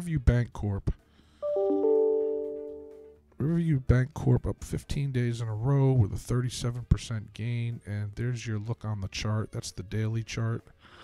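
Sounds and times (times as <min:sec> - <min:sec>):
bell-like notification chime: 0:01.4 - 0:03.2.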